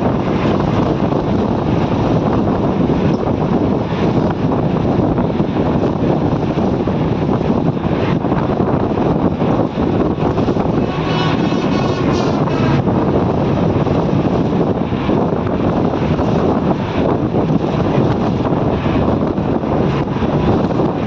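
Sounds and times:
vehicle running noise: 0:00.0 - 0:21.0
wind buffeting microphone: 0:00.0 - 0:21.0.

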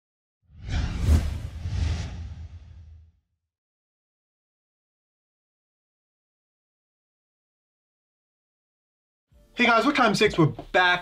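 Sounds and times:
whoosh: 0:00.5 - 0:03.2.

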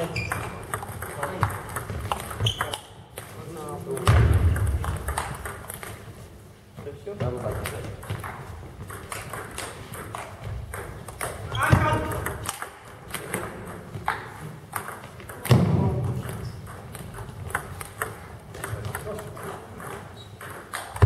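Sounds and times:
table tennis balls clicking: 0:00.0 - 0:06.2, 0:07.2 - 0:21.0.

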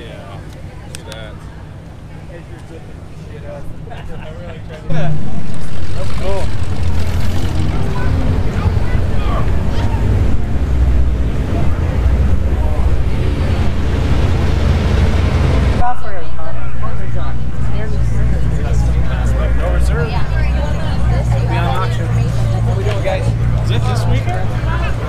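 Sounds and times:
faint voices: 0:00.0 - 0:25.0.

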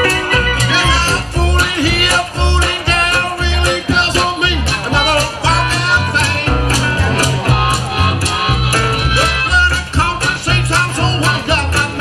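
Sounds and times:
guitar: 0:00.0 - 0:12.0
harmonica lead: 0:00.0 - 0:12.0
upright bass notes: 0:00.0 - 0:12.0.

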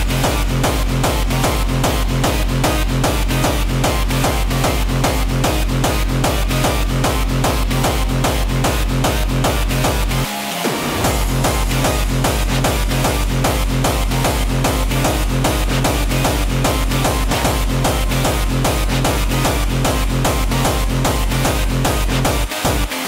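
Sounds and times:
hardstyle dance music: 0:00.0 - 0:23.0
heavy kick drum: 0:00.0 - 0:23.0.

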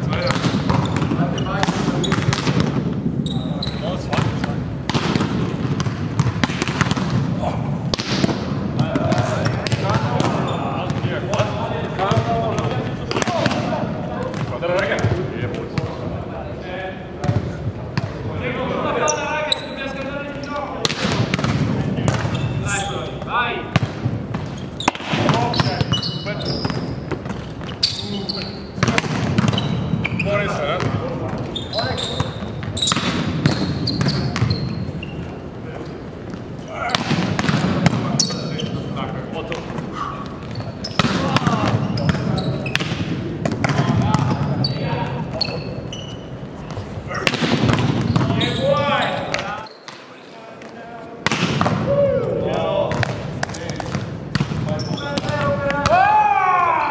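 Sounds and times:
volleyballs struck and bouncing: 0:00.0 - 0:16.2, 0:17.2 - 0:18.3, 0:20.0 - 0:35.0, 0:36.2 - 0:56.0
volleyballs slapped by hand: 0:04.1 - 0:07.3, 0:07.9 - 0:10.4, 0:41.0 - 0:44.3, 0:51.2 - 0:51.9.

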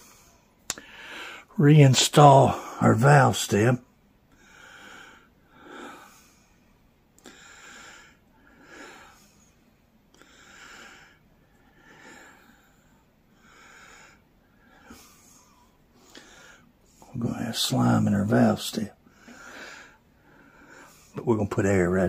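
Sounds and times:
man breathing: 0:00.0 - 0:01.6, 0:04.3 - 0:17.1, 0:19.0 - 0:21.2.

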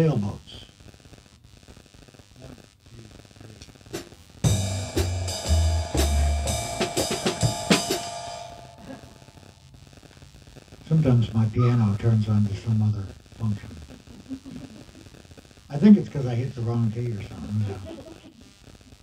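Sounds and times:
band music burst: 0:03.9 - 0:09.6.

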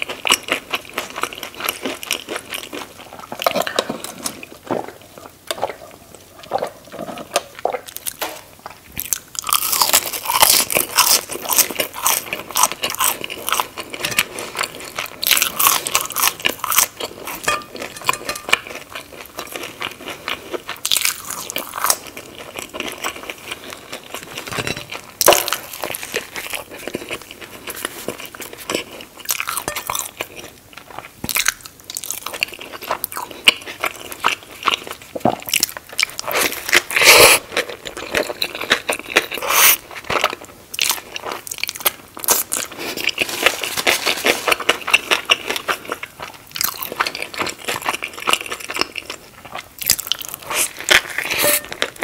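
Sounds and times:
chewing crisp fries: 0:00.0 - 0:52.0.

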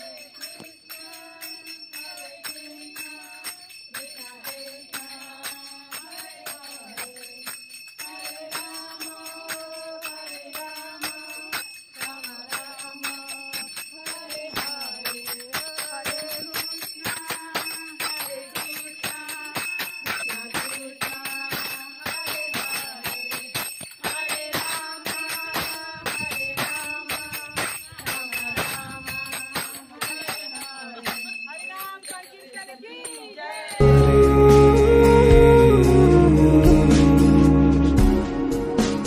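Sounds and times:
jingling metal percussion: 0:00.0 - 0:37.5.

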